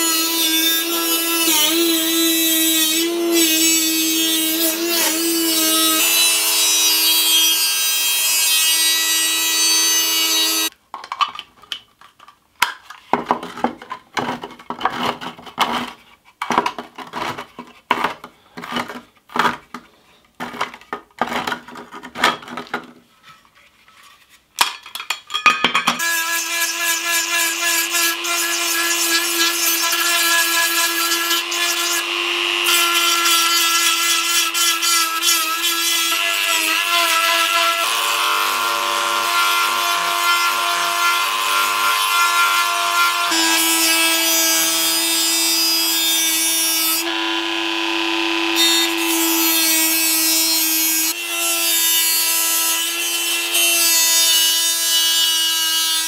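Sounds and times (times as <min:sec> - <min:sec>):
rotary tool grinding metal: 0:00.0 - 0:10.8, 0:26.0 - 0:56.0
rotary tool rasping metal can: 0:26.0 - 0:37.9
rotary tool whine: 0:43.3 - 0:49.6.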